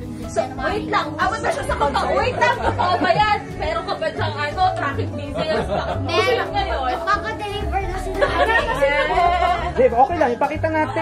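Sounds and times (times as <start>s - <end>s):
lively group chatter: 0.0s - 11.0s.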